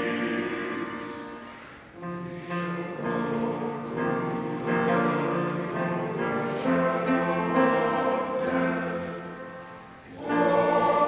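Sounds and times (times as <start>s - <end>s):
men's choir singing: 0.0s - 1.6s, 2.4s - 11.0s.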